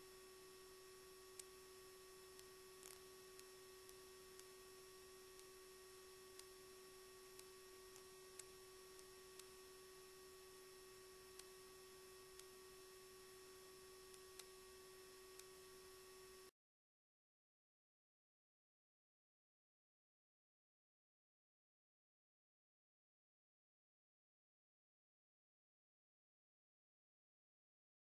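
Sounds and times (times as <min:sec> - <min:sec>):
faint electronic tone: 0:00.0 - 0:16.5
faint ticks: 0:01.3 - 0:01.6, 0:02.3 - 0:04.6, 0:05.3 - 0:05.6, 0:06.3 - 0:06.6, 0:07.2 - 0:09.6, 0:11.2 - 0:12.6, 0:14.1 - 0:14.6, 0:15.3 - 0:15.6.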